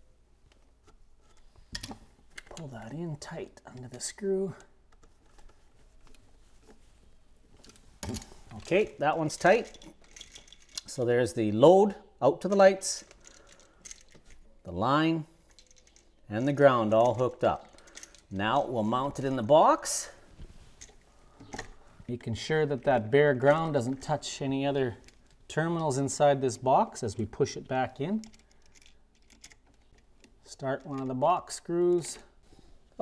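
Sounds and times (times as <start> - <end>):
faint clicks and rustles: 0.0 - 11.1, 12.4 - 14.7, 15.3 - 33.0.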